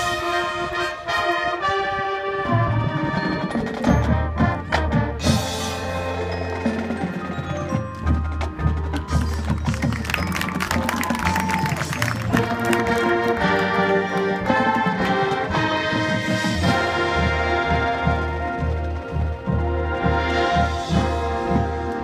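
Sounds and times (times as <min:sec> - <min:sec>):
marching band sustained chords: 0:00.0 - 0:22.0
mallet percussion: 0:03.2 - 0:22.0.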